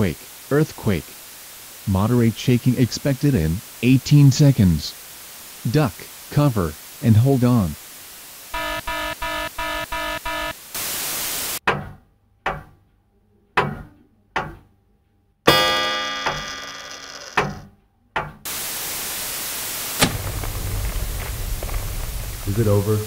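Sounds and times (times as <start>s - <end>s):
radio static: 8.5s - 11.6s
weather alert radio beeping: 8.5s - 11.6s
deep impact hits: 20.0s - 23.0s.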